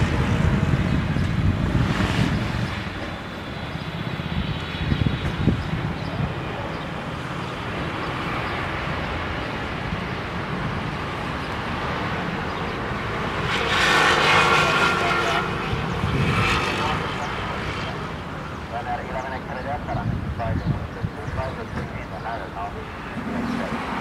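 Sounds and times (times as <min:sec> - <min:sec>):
jet engines passing overhead: 0:00.0 - 0:24.0.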